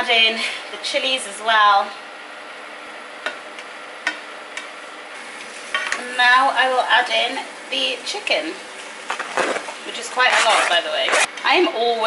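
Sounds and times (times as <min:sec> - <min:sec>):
onions sizzling in a frying pan: 0:05.2 - 0:11.0.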